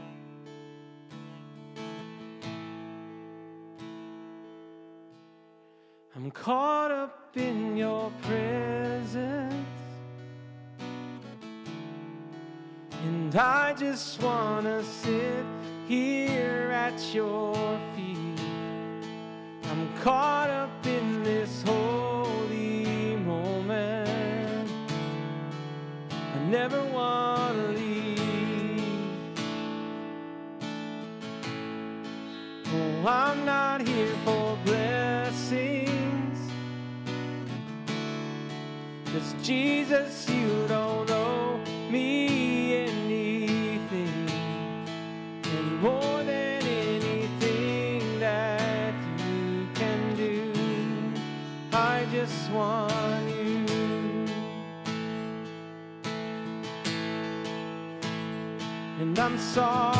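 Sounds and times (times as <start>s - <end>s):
acoustic guitar strumming: 0.0s - 59.9s
man singing: 6.1s - 10.0s, 13.0s - 18.9s, 19.6s - 25.1s, 26.2s - 29.6s, 32.6s - 36.6s, 39.1s - 54.8s, 58.8s - 59.9s.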